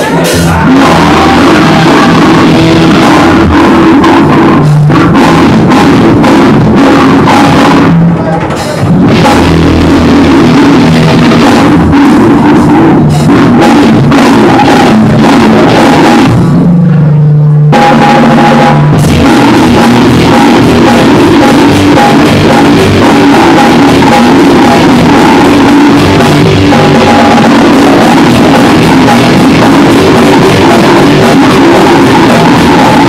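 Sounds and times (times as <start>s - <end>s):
live band music with drums: 0.0s - 16.6s.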